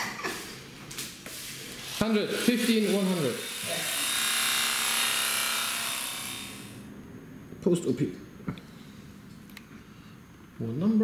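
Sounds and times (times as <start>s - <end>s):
electric tattoo pen buzzing: 1.7s - 6.9s.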